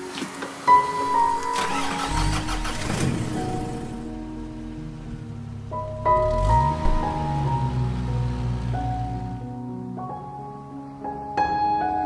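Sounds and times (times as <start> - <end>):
background music: 0.0 - 12.0
car engine starting and idling: 1.1 - 9.6.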